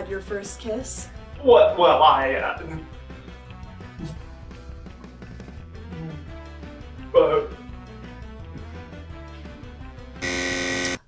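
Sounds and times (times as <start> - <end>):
soft background music: 0.0 - 10.9
game-show buzzer: 10.2 - 11.0.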